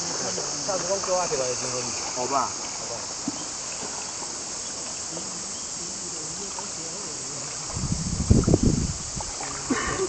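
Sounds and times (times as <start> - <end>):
insect chorus drone: 0.0 - 10.0.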